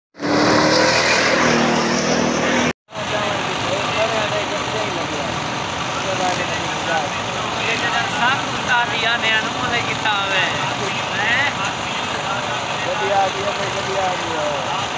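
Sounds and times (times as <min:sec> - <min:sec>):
crowd chattering and calling out: 0:02.4 - 0:14.9.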